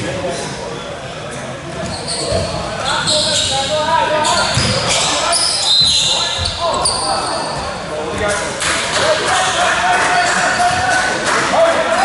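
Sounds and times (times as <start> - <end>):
high sneaker squeaks: 1.7 - 11.1.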